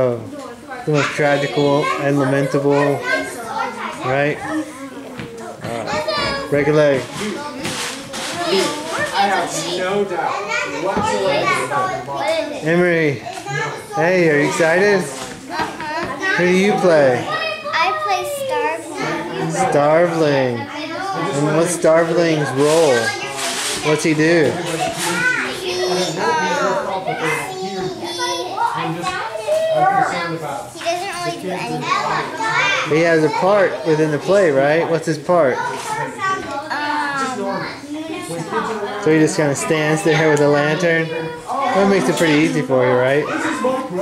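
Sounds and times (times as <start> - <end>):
children chattering: 0.0 - 44.0.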